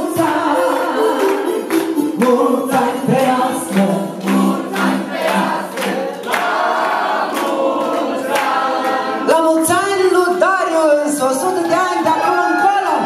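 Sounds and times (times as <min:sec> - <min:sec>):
backing music: 0:00.0 - 0:07.5
group singing: 0:00.0 - 0:09.4
hands clapping in time: 0:00.6 - 0:09.0.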